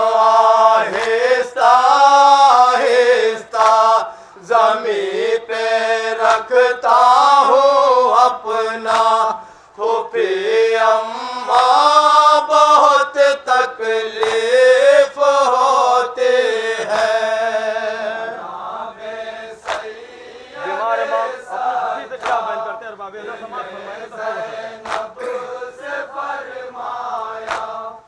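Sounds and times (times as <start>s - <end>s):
men chanting a lament: 0.0s - 28.0s
hands slapping chests: 0.9s - 1.2s, 3.6s - 3.9s, 8.9s - 9.2s, 14.2s - 14.5s, 19.6s - 20.2s, 22.1s - 22.6s, 24.8s - 25.5s, 27.4s - 27.8s.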